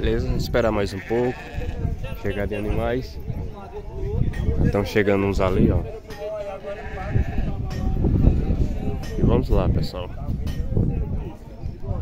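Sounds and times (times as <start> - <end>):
sheep or goats bleating: 0.9 - 2.0, 6.6 - 7.6
low rumble on microphone: 7.0 - 12.0.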